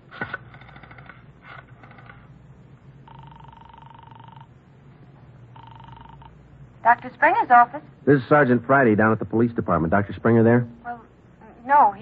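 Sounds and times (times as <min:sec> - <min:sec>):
telephone ringing tone: 0:03.0 - 0:04.6, 0:05.5 - 0:06.5.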